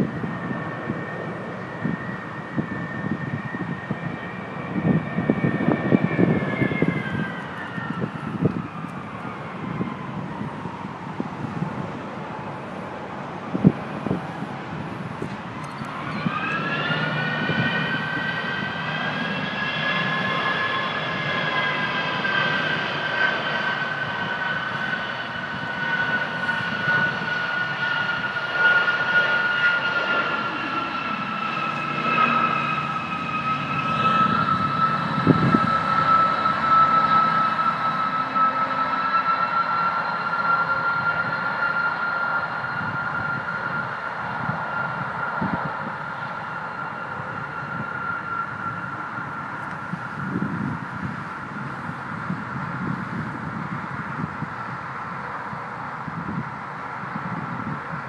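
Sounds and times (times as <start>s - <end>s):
jet engine whine: 0.0s - 58.0s.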